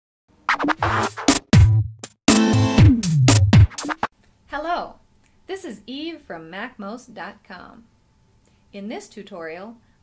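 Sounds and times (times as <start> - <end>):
record scratch effects: 0.3 - 4.1.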